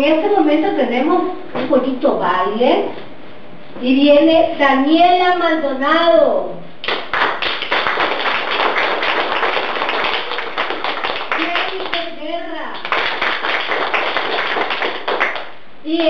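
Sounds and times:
group applause: 6.8 - 12.2, 12.8 - 15.6.

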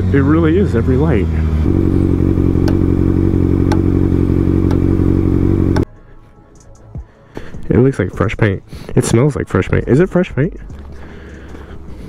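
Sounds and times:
motorcycle engine idling: 0.0 - 5.9.

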